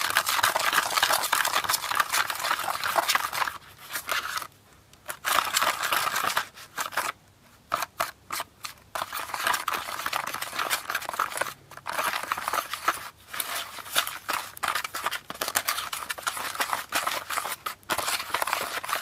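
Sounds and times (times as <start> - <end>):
plastic spoon scraping powder: 0.0 - 19.0.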